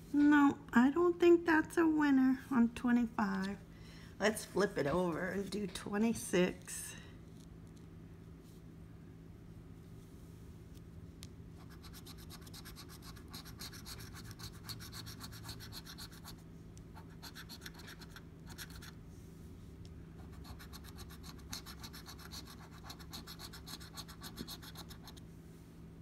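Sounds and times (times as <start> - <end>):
coin scratching a ticket: 11.6 - 16.4, 17.0 - 18.9, 20.2 - 25.2.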